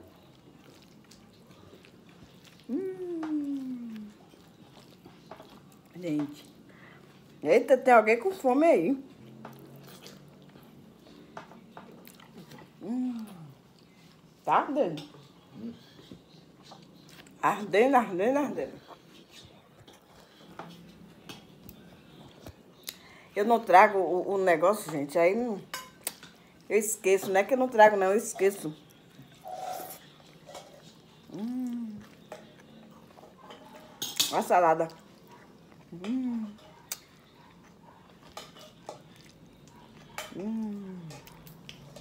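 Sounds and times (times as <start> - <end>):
person chewing food: 0.0 - 7.4, 9.1 - 14.4, 28.8 - 34.2, 34.8 - 42.0
mouth sounds eating pasta: 0.7 - 5.0, 29.2 - 32.8, 39.1 - 42.0
person humming hmm: 2.7 - 4.0, 31.3 - 32.0, 35.9 - 36.6, 40.4 - 41.2.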